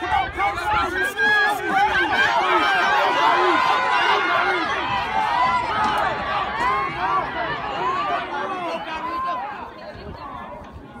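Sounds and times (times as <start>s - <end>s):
spectators calling out and chattering: 0.0s - 11.0s.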